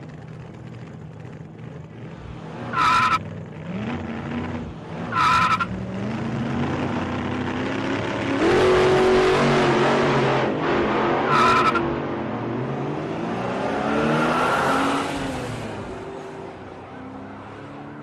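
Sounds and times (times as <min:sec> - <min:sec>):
car engine revving: 0:00.0 - 0:17.8
short high tire squeals: 0:02.7 - 0:03.2, 0:05.1 - 0:05.7, 0:11.2 - 0:11.9.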